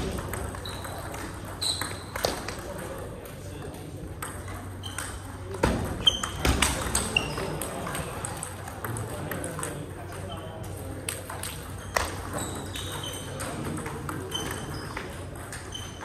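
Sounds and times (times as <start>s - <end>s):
background table tennis play: 0.0s - 16.0s
table tennis balls clicking: 0.0s - 16.0s.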